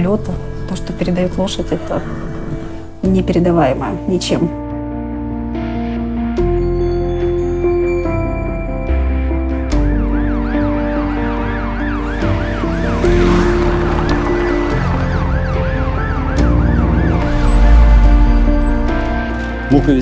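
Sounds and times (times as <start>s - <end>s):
music score of sustained chords: 0.0s - 20.0s
ambulance siren wailing: 9.1s - 20.0s
deep low rumble: 12.1s - 19.7s.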